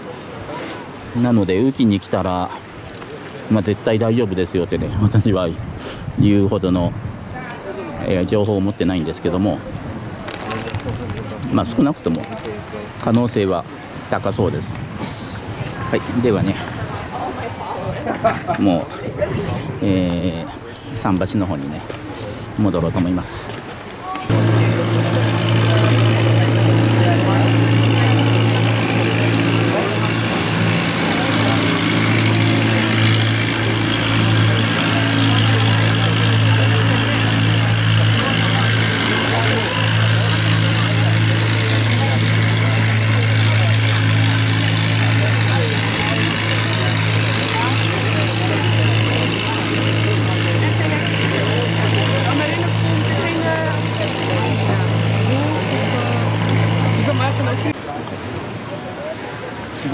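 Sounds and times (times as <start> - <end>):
indistinct voices: 23.9 - 59.9
motor idling with low hum: 24.3 - 57.8.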